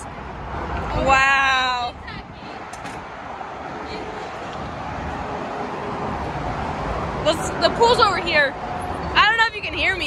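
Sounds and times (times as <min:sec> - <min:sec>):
highway traffic passing: 0:00.0 - 0:10.0.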